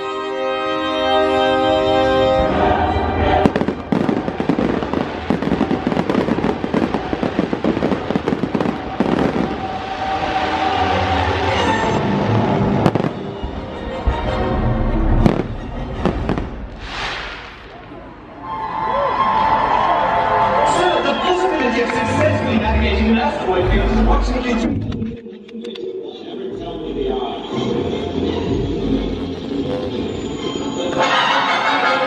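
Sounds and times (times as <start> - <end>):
show music: 0.0 - 32.0
fireworks crackling and popping: 3.4 - 13.8, 15.1 - 18.3
firework bangs: 3.4 - 18.4.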